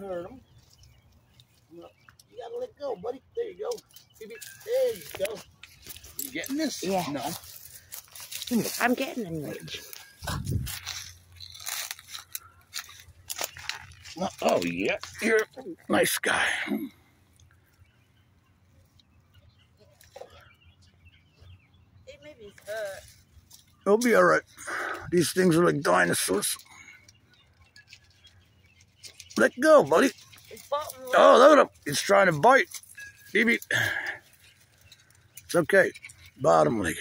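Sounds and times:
faint bird chirps: 0.0 - 32.3
dry grass rustling and crackling: 3.7 - 16.0, 22.2 - 37.0.

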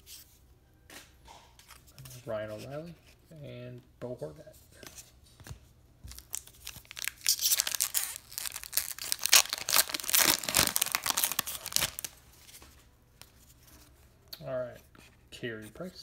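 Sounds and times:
foil wrapper crackling: 6.1 - 12.2.

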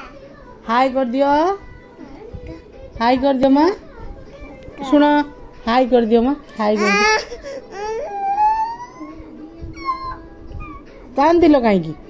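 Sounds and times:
toddler crying and whining: 6.6 - 11.0.

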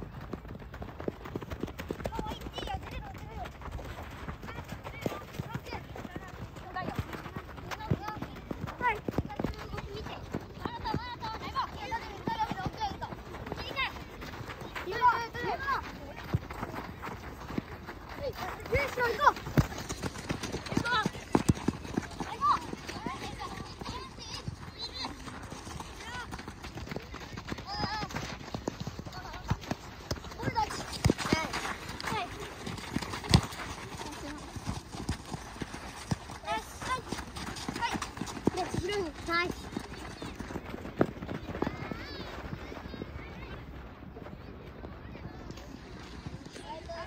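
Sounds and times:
running footsteps on gravel: 0.0 - 47.0
children shouting: 6.8 - 16.7, 18.1 - 26.9, 41.4 - 43.6.

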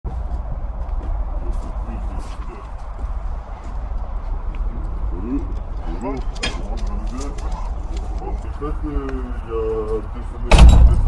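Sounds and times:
footsteps on concrete: 0.1 - 9.2
metal gate clattering open: 10.5 - 11.0.

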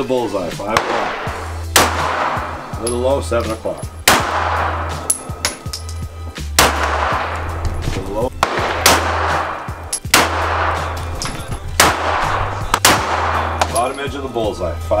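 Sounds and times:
low music bed: 0.0 - 15.0
pistol shots with echo: 0.7 - 3.0, 4.0 - 5.7, 6.6 - 7.6, 8.3 - 13.9.

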